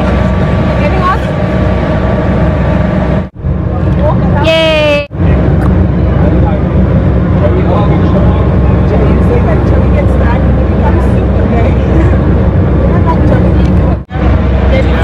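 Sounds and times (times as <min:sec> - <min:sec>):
ship engine low rumble: 0:00.0 - 0:15.0.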